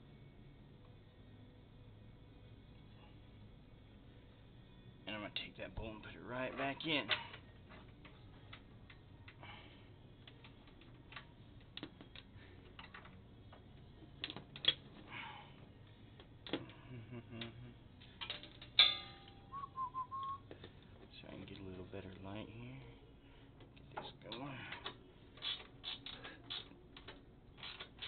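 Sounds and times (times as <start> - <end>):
sharp ringing metal clink: 18.8 - 19.6
brief wavering whistle: 19.4 - 20.4.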